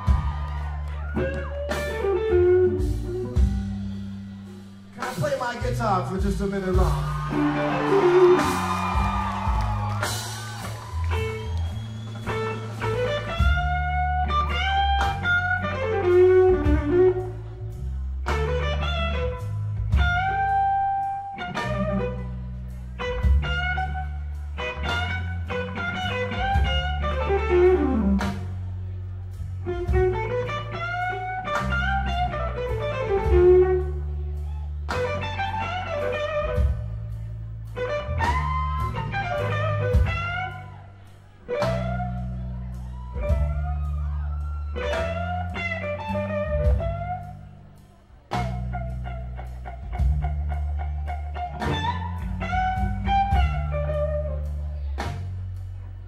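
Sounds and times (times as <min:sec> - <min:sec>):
blues electric guitar solo: 0:00.0 - 0:05.7, 0:06.5 - 0:55.3
drum kit: 0:00.0 - 0:56.0
electric bass: 0:00.0 - 0:56.0.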